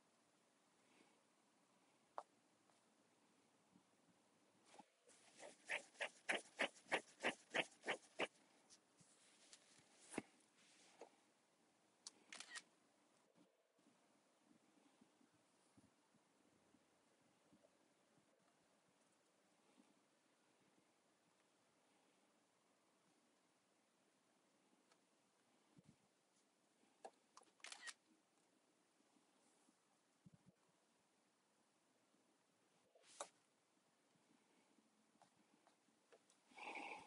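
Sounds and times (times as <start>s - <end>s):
faint click: 12.0s - 12.7s
camera shutter sound: 12.3s - 12.7s, 27.6s - 28.0s
camera shutter clicks: 27.6s - 28.0s.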